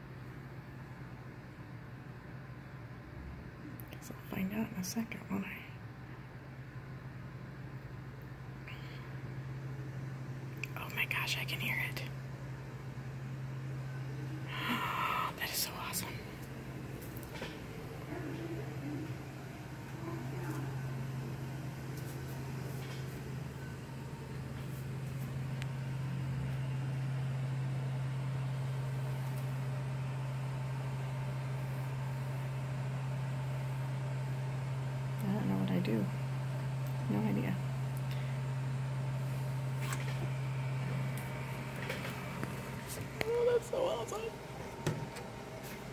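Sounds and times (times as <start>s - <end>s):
delivery robot humming: 8.6s - 45.9s.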